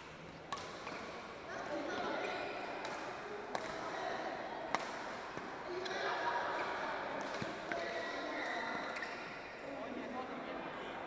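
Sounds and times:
sharp knocks from badminton play: 0.0 - 4.0, 4.7 - 9.4
people talking: 1.5 - 11.0.

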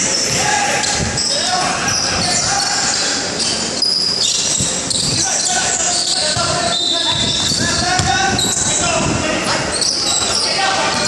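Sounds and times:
sneakers squeaking on hardwood: 0.0 - 8.9, 9.7 - 11.0
people shouting: 0.3 - 2.9
basketball bouncing: 4.6 - 8.8.

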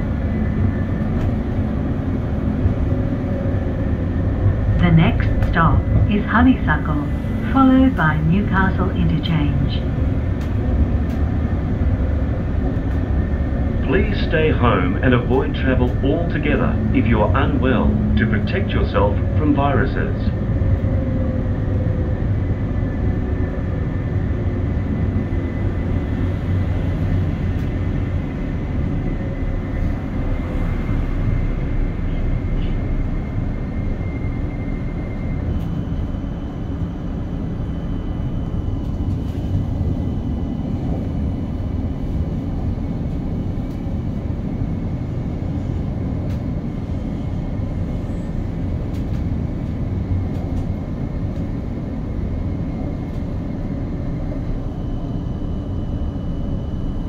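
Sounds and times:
tram wheels rumbling: 0.0 - 57.0
faint high whine: 52.5 - 57.0.

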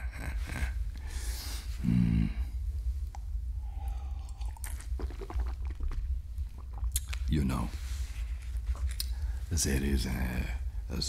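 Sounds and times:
low steady hum: 0.0 - 11.0
mouth sipping and swallowing: 3.0 - 7.3, 8.3 - 9.4.

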